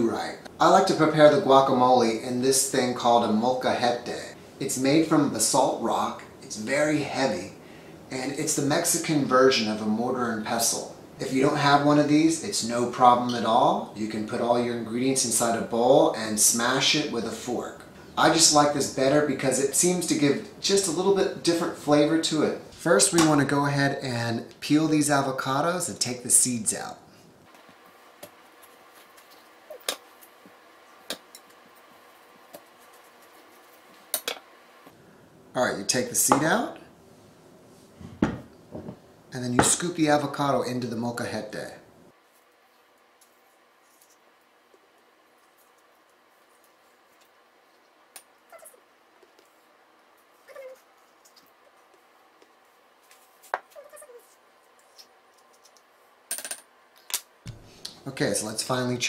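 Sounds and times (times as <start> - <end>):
knife and cutting board knocks: 38.2 - 39.0.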